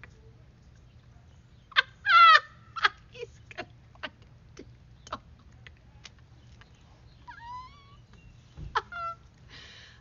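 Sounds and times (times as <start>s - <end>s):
woman laughing hard: 1.7s - 4.3s, 8.6s - 9.8s.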